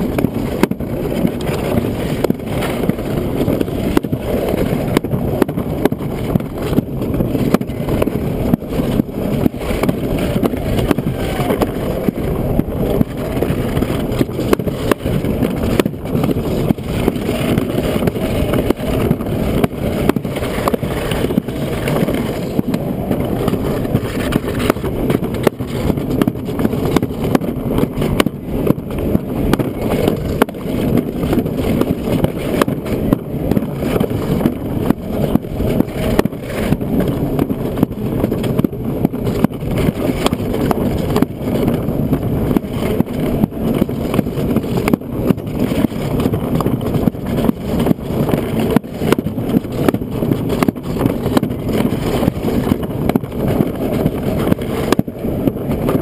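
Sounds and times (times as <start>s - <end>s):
sled wheels rolling on track: 0.0s - 56.0s.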